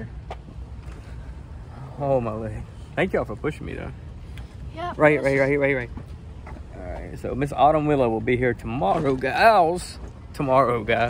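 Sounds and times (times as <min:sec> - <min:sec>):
wheelchair wheels rolling on pavement: 0:04.8 - 0:11.0.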